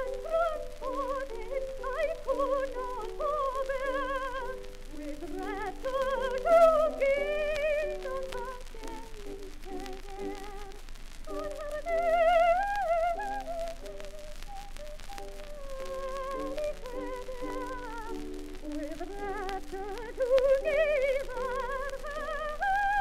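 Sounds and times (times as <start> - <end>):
record surface noise clicks: 0.0 - 23.0
soprano singing with vibrato: 0.0 - 23.0.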